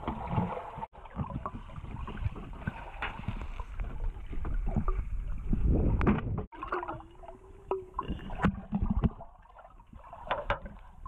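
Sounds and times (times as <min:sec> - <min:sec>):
knocks and clicks underwater: 0:00.0 - 0:11.0.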